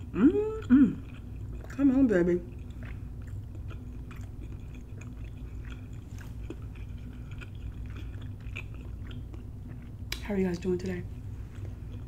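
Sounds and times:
close chewing with wet clicks: 0.0s - 12.0s
low steady hum: 0.0s - 12.0s.

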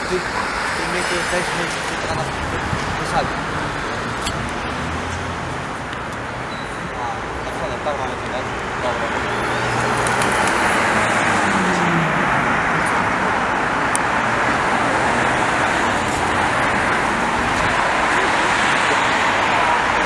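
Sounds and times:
cars driving past: 0.0s - 20.0s.

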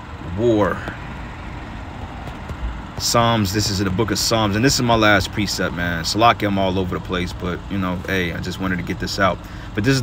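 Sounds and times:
background rumble and hiss: 0.0s - 10.0s.

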